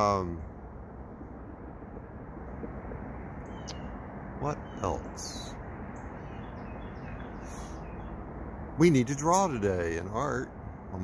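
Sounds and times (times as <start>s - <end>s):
distant road traffic rumble: 0.0s - 11.0s
faint bird chirps: 3.4s - 8.2s.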